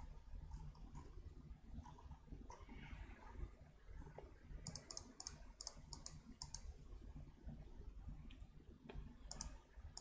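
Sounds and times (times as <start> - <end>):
mouse clicks: 4.0 - 6.7, 8.3 - 10.0.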